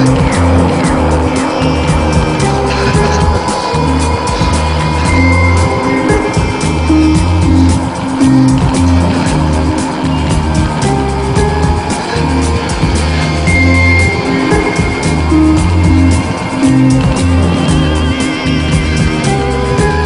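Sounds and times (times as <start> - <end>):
instrumental rock music: 0.0 - 20.0
steady drum beat: 0.0 - 20.0.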